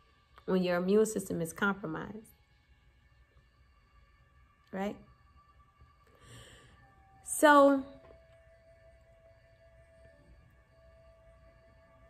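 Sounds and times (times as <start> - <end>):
faint ambient music: 0.0 - 12.0.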